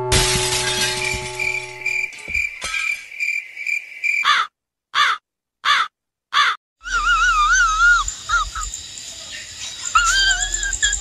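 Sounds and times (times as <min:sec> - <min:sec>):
steady high music tone: 0:00.0 - 0:02.2
crow-like cawing calls: 0:04.2 - 0:06.6.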